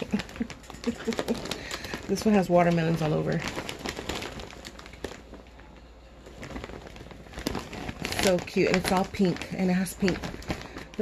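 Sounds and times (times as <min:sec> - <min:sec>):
gift bag rustling and crinkling: 0:00.0 - 0:11.0.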